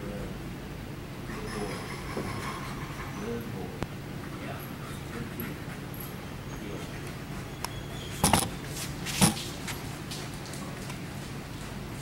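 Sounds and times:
dog whimpering: 1.3 - 3.4.

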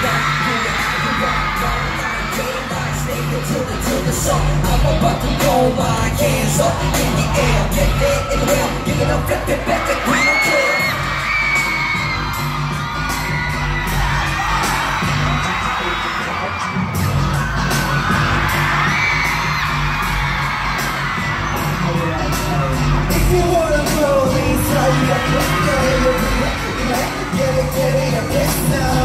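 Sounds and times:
fans screaming and cheering: 0.0 - 29.0
pop music with heavy beat: 0.0 - 29.0.

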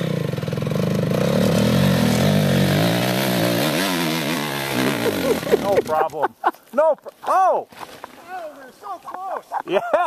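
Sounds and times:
dirt bike engine revving: 0.0 - 6.2.

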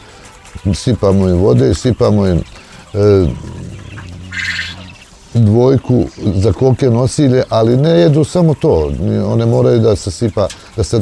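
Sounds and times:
quail harsh call: 3.0 - 5.2.

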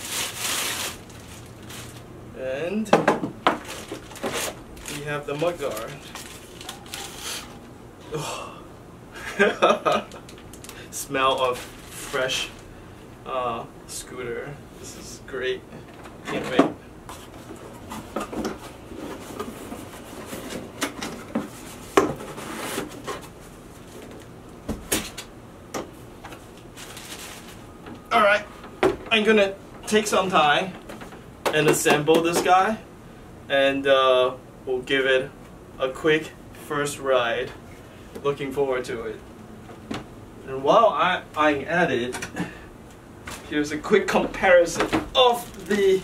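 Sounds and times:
plastic packaging crinkling: 0.0 - 2.1, 3.5 - 7.7, 9.9 - 12.6, 26.5 - 27.7, 45.1 - 46.0
cardboard scraping and rustling: 3.5 - 7.6, 17.1 - 24.2, 26.7 - 27.6.

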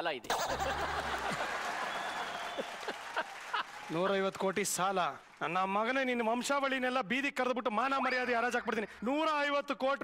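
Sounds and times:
studio audience applauding: 0.3 - 6.7.

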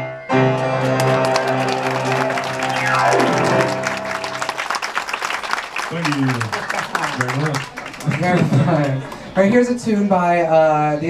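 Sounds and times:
grand piano chord: 0.0 - 4.7
piano sweep down the keys: 0.0 - 4.7
audience applause: 0.3 - 9.7.

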